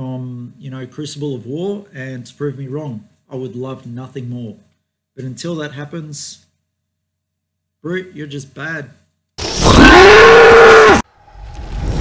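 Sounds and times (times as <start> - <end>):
creature roaring: 9.6 - 11.0
rumbling whoosh: 11.1 - 12.0.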